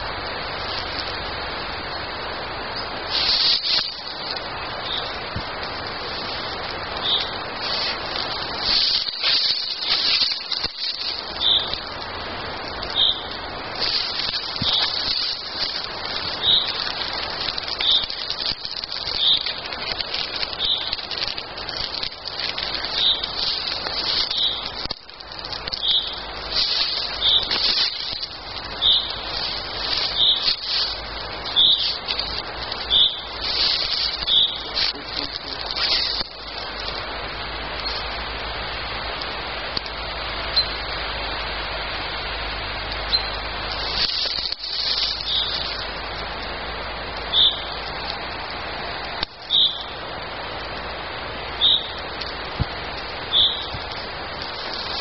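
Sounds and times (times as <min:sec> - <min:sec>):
steady hiss: 0:00.0 - 0:55.0
high birdsong: 0:02.7 - 0:05.2, 0:06.9 - 0:11.9, 0:12.8 - 0:13.4, 0:14.0 - 0:19.6, 0:20.5 - 0:21.0, 0:22.6 - 0:24.8, 0:25.7 - 0:34.8, 0:45.0 - 0:45.8, 0:47.3 - 0:47.8, 0:49.4 - 0:50.0, 0:51.6 - 0:52.1, 0:53.3 - 0:54.0.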